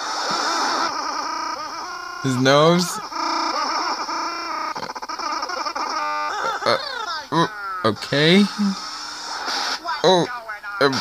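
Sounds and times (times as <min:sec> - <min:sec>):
stuttering cartoon voices: 0:00.2 - 0:08.9
cartoon sound effects: 0:00.3 - 0:08.8.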